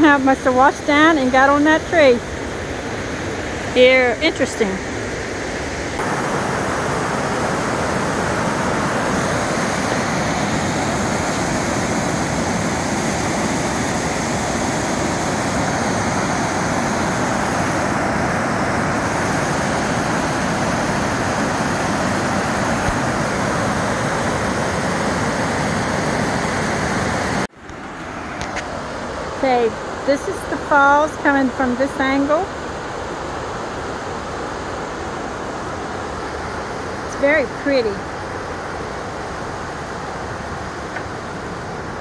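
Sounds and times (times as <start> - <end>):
waterfall rushing: 0.0 - 42.0.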